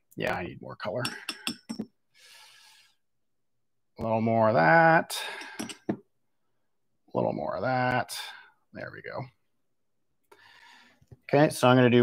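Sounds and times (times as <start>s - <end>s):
paintbrush clinking against glass jar: 1.0s - 1.8s, 5.4s - 6.0s.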